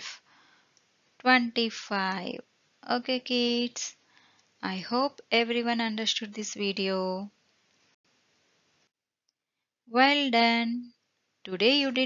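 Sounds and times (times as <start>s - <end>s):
faint hiss: 0.0s - 5.3s.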